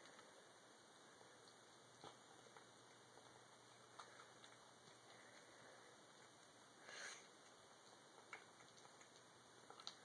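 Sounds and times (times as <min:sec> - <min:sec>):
cat chewing and lapping: 0:00.0 - 0:10.0.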